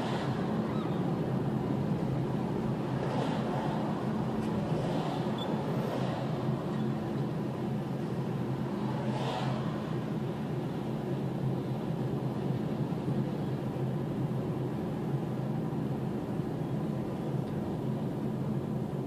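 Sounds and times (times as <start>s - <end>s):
car interior road and engine rumble: 0.0s - 19.0s.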